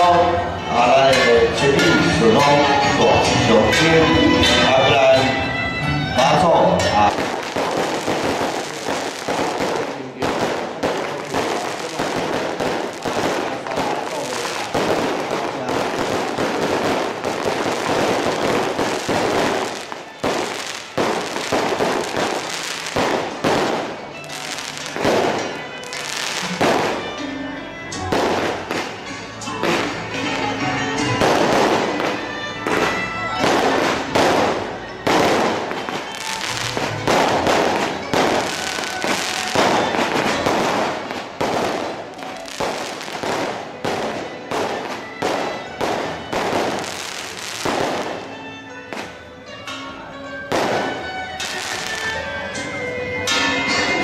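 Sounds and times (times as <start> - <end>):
festival music: 0.0 - 54.0
firecrackers popping: 6.2 - 27.3, 27.9 - 49.8, 50.5 - 54.0.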